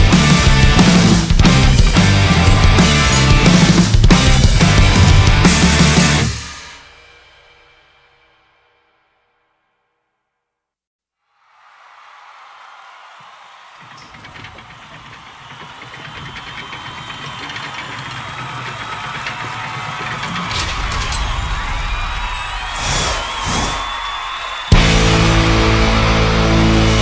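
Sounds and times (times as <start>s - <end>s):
rock band with distorted guitar: 0.0s - 6.6s, 24.7s - 27.0s
noisy swell: 22.5s - 26.4s.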